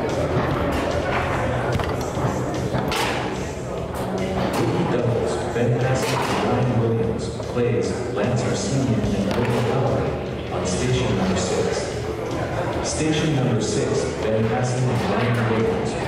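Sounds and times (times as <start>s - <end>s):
background music: 0.0s - 16.0s
chatter in large hall: 0.0s - 16.0s.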